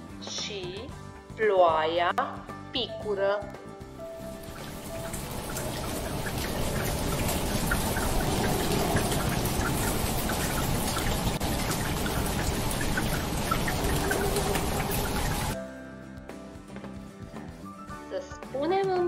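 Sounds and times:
rain falling steadily: 0:04.2 - 0:15.6.

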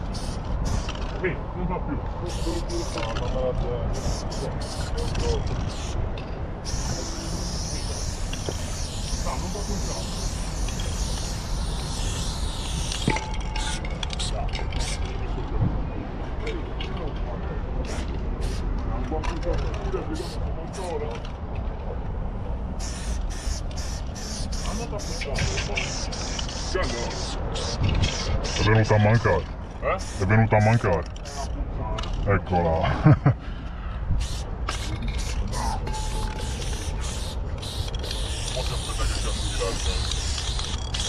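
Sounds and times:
spray-paint can hissing: 0:00.0 - 0:01.1, 0:02.2 - 0:03.2, 0:04.0 - 0:06.0, 0:06.6 - 0:15.0, 0:17.9 - 0:18.6, 0:22.8 - 0:29.4, 0:30.0 - 0:30.3, 0:31.2 - 0:31.5, 0:34.2 - 0:41.0.

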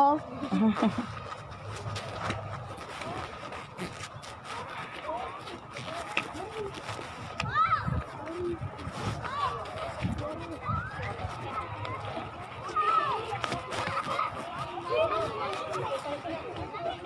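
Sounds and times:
scattered voices: 0:00.0 - 0:17.0
person laughing: 0:00.4 - 0:01.2.

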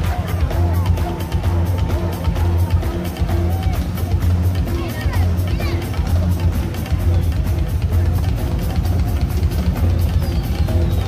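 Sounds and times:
drum kit steady beat: 0:00.0 - 0:11.0
heavy booming bass line: 0:00.0 - 0:11.0.

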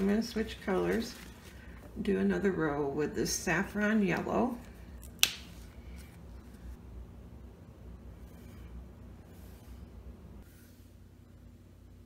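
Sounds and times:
faint low room hum: 0:00.0 - 0:12.0.

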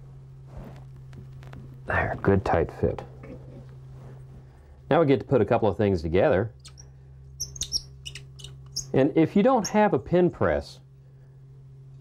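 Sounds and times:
steady low hum: 0:00.0 - 0:12.0
small parts squeaking and clicking: 0:06.6 - 0:09.0.

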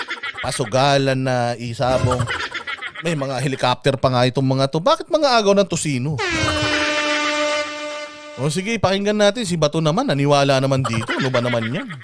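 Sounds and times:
air horn blast: 0:06.2 - 0:08.6.

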